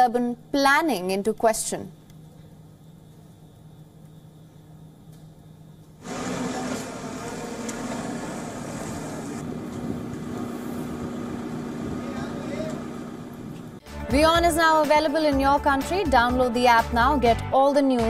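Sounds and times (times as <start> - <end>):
vehicle engine running: 6.0 - 13.8.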